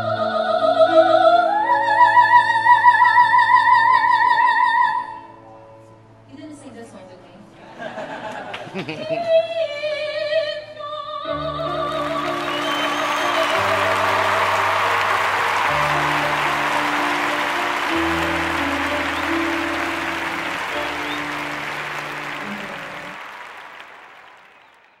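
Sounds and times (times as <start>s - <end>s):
slow grand piano chords: 11.4s - 24.1s
audience applauding: 11.8s - 25.0s.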